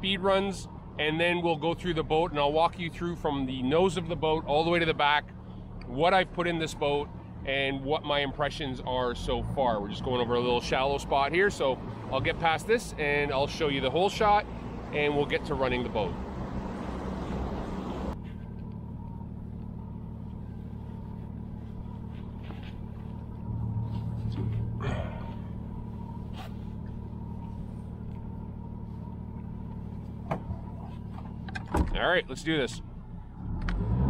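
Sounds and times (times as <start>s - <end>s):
wind: 0.0s - 34.0s
outboard motor idling: 17.0s - 31.7s
short rustle: 20.4s - 31.3s.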